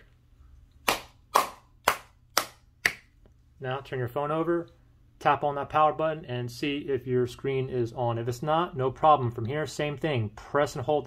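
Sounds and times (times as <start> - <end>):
palm slapping a smartphone: 0.8 - 3.2.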